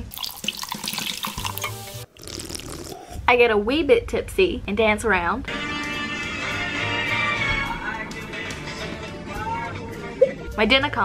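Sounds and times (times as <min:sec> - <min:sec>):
bubbles fizzing: 0:00.0 - 0:03.1
drink pouring into glass: 0:00.0 - 0:03.1.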